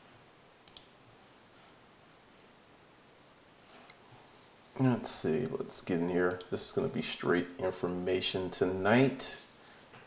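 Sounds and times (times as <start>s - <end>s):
faint computer mouse clicks: 0.6s - 0.9s.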